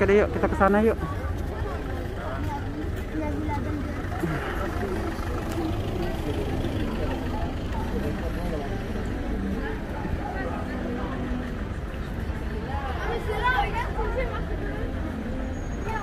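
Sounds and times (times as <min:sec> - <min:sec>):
chatter of passers-by: 0:00.0 - 0:16.0
low rumble of traffic: 0:00.0 - 0:16.0.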